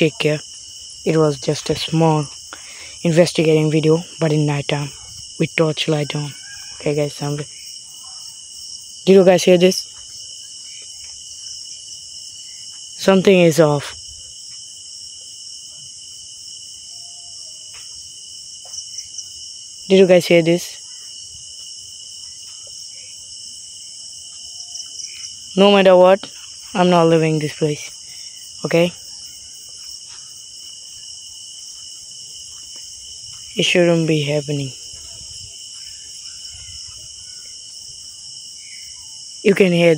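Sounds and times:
crickets trilling: 0.0s - 39.9s.

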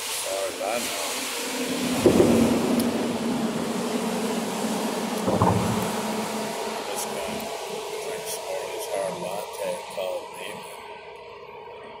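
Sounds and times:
steady hum: 0.0s - 12.0s
loud low rumble: 1.6s - 11.0s.

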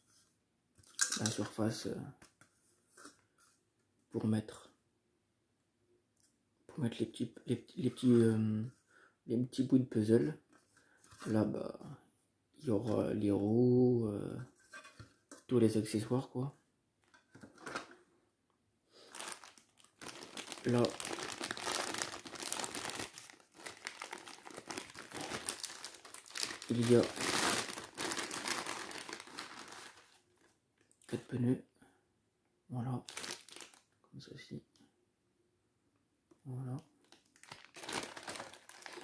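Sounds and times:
plastic bag crinkling: 19.0s - 30.5s, 33.1s - 33.8s, 37.0s - 39.0s.

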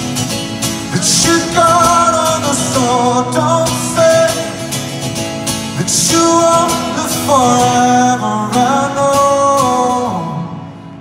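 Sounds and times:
rock ballad band playing: 0.0s - 10.9s
acoustic guitar strumming: 0.0s - 11.0s.

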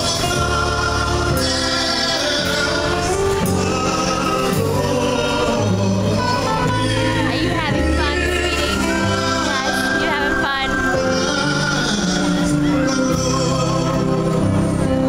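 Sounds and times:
man singing: 0.0s - 10.0s, 10.7s - 15.0s
band backing: 0.0s - 15.0s
bass line: 0.0s - 15.0s
gospel group singing: 0.0s - 15.0s.

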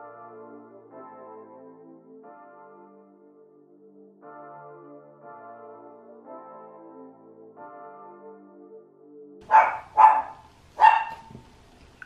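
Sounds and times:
dog barking: 9.4s - 11.5s.

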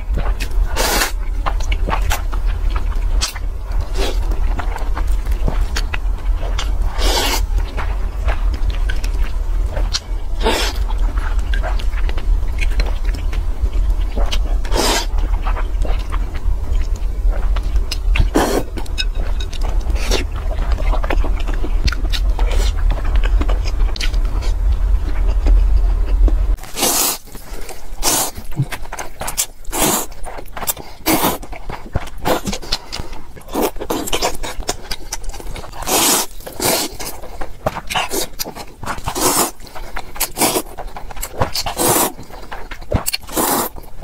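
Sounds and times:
steady low hum: 0.0s - 44.0s
wet chewing: 0.0s - 44.0s
slurping noodles: 7.0s - 7.5s, 14.7s - 15.1s, 26.6s - 28.7s, 29.4s - 30.1s, 35.8s - 37.1s, 38.9s - 40.8s, 41.7s - 42.2s, 43.2s - 43.8s
noodles being slurped: 35.7s - 37.3s, 38.1s - 40.8s, 41.6s - 42.2s, 43.0s - 43.8s.

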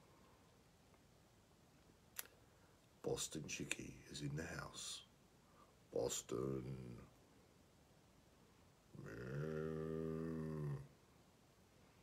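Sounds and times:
man humming: 9.0s - 11.0s.

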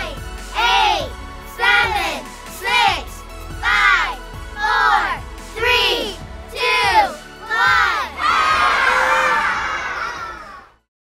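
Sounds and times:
children shouting countdown: 0.0s - 10.7s
children cheering and yelling: 3.6s - 10.8s.

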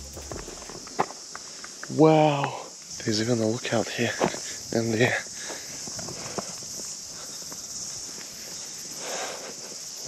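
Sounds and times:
footsteps rustling through grass: 0.0s - 1.1s
insects chirping: 0.0s - 10.0s.

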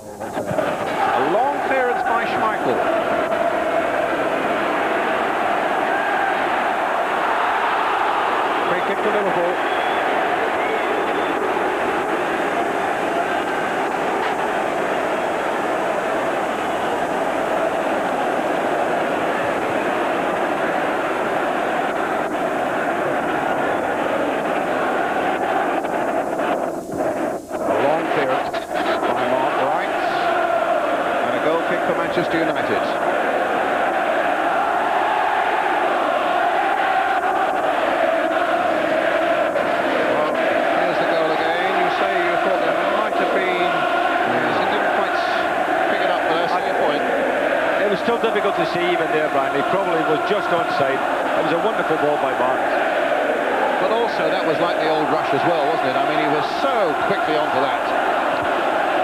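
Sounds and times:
stadium crowd singing and chanting: 0.0s - 59.0s.

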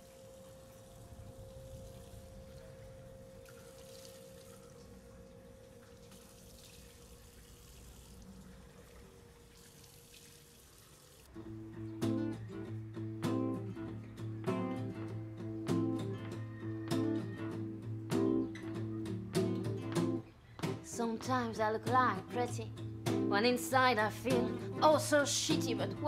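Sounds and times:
acoustic guitar strumming: 11.3s - 26.0s.

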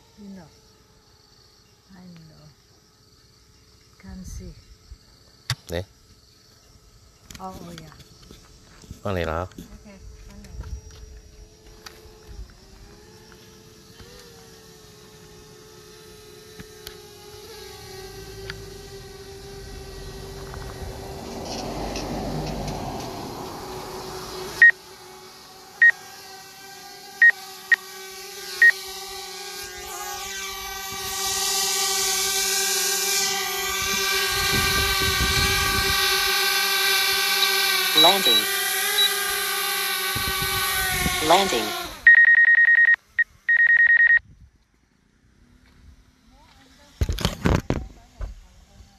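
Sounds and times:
drone propellers humming: 10.9s - 42.2s
high loud beeps: 38.0s - 39.2s, 42.1s - 44.2s.

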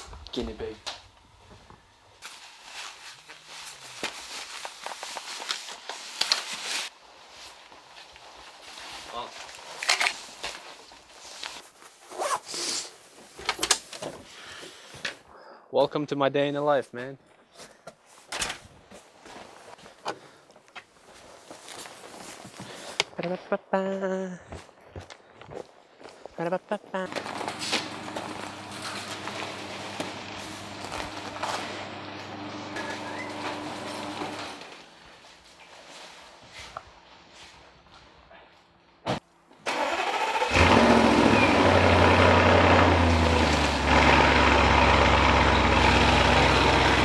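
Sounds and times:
rasping zip-like handling noises: 11.8s - 13.0s
garage door opener motor hum: 27.1s - 34.8s.

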